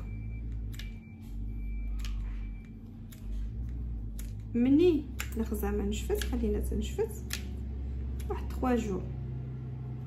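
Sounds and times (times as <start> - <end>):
low steady hum: 0.0 - 10.0
scissors snipping stems: 1.9 - 8.6.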